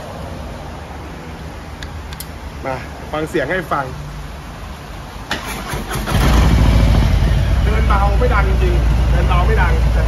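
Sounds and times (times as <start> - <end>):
electric starter cranking: 5.3 - 6.6
motorcycle engine idling: 5.6 - 10.0.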